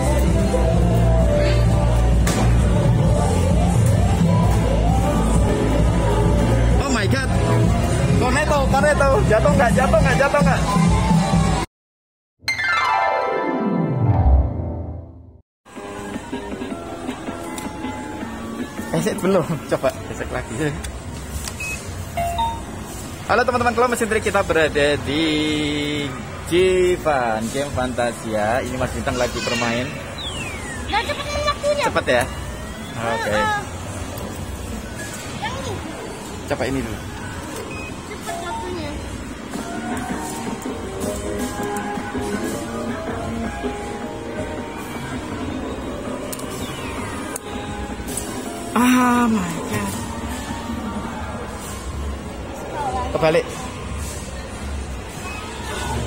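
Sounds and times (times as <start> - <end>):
arcade hall hum: 0.0 - 11.7, 12.5 - 56.0
short electronic beeps: 21.6 - 22.8, 37.6 - 38.8.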